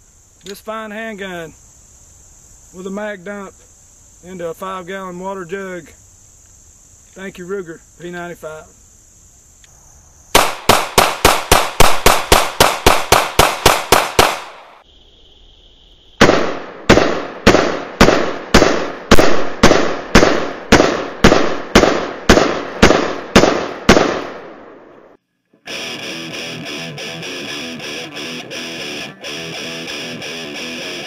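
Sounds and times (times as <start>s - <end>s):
pistol shots: 10.4s - 14.8s, 16.2s - 24.8s.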